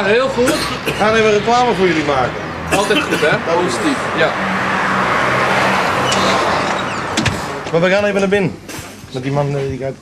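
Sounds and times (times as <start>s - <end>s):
tyre and road noise: 0.0s - 10.0s
car engine hum: 2.4s - 8.7s.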